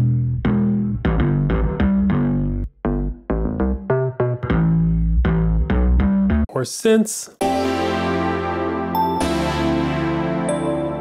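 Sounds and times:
bass guitar plucked notes: 0.0 - 6.5, 7.4 - 11.0.

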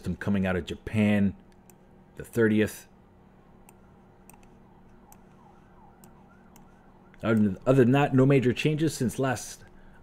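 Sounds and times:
low electrical hum: 0.0 - 10.0
computer mouse clicks: 3.6 - 7.5.

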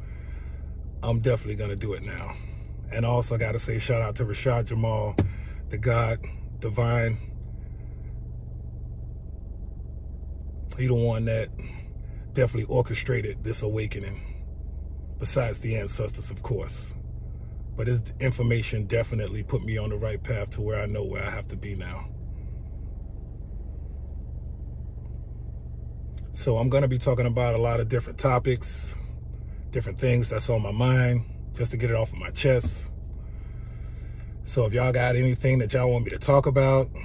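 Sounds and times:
car engine idling: 0.0 - 37.0.

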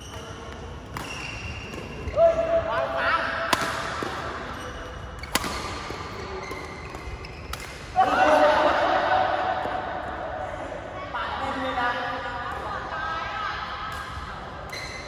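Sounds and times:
rackets striking shuttlecock: 3.5 - 4.4, 5.2 - 8.0
shoes squeaking on floor: 6.1 - 7.6.

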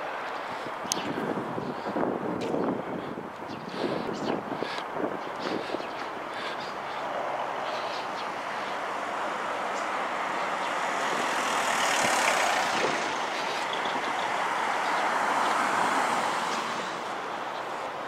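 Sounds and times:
vehicles passing: 0.0 - 18.0.

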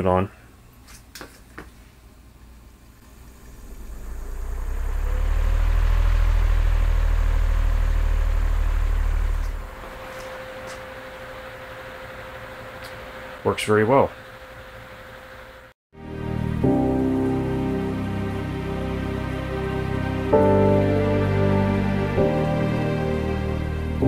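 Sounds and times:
fan motor humming: 3.0 - 15.7.

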